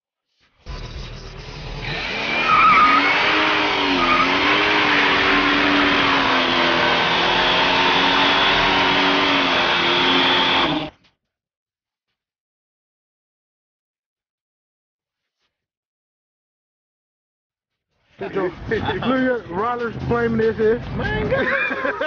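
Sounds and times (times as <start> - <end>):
tyres hissing and squealing: 0.6 - 10.7
car engine revving high: 0.7 - 10.9.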